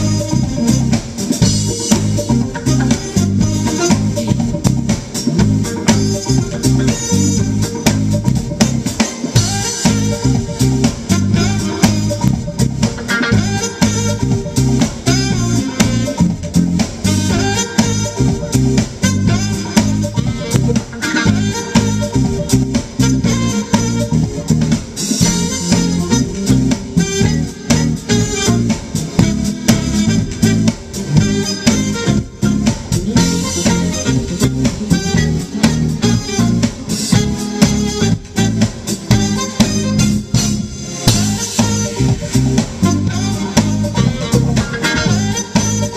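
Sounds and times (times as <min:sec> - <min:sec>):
alto saxophone lead: 0:00.0 - 0:45.9
smooth jazz band playing: 0:00.0 - 0:45.9.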